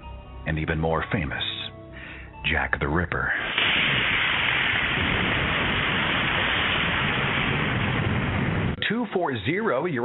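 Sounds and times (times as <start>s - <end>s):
steady rain-like hiss: 3.3s - 9.5s.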